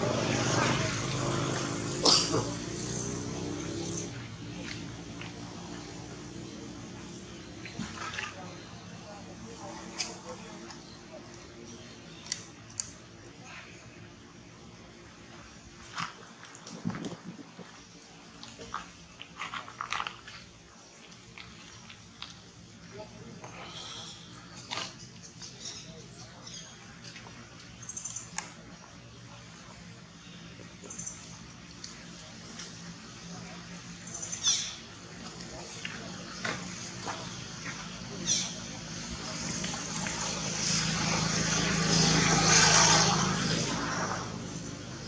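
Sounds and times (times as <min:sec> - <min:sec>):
passing engine hum: 0:00.0 - 0:13.4, 0:21.3 - 0:45.0.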